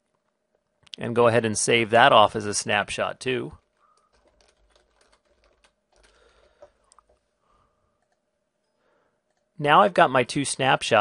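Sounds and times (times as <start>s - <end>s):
keyboard typing: 3.6s - 7.2s, 8.0s - 8.2s.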